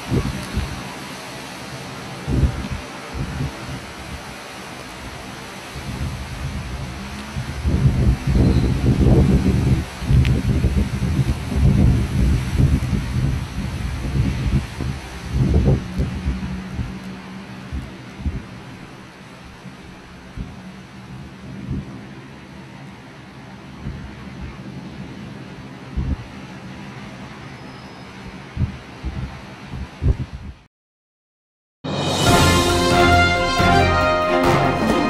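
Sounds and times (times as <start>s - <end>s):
torrential rain: 0.0s - 30.1s, 31.9s - 35.0s
low rumbling thunder: 5.8s - 18.7s, 25.9s - 26.3s.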